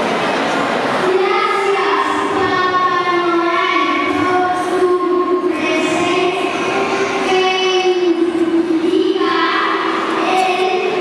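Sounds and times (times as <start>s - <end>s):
children singing long notes: 1.0s - 11.0s.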